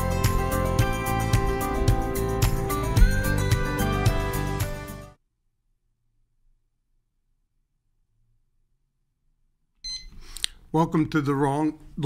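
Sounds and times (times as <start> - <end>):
short high-pitched beep: 9.8 - 10.2.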